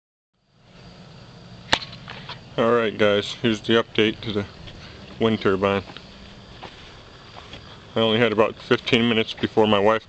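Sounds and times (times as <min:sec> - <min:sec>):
low hum: 0:00.4 - 0:10.0.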